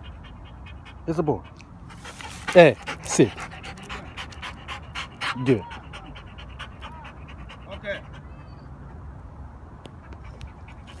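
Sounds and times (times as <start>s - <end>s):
dog panting: 0.0s - 8.8s, 10.0s - 11.0s.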